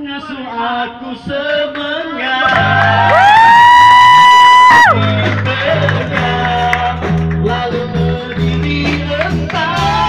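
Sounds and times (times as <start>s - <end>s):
person cheering whoop: 2.4s - 5.0s.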